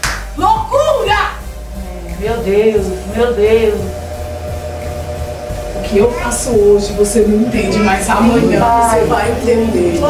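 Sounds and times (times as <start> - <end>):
soft sustained chord music: 0.0 - 10.0.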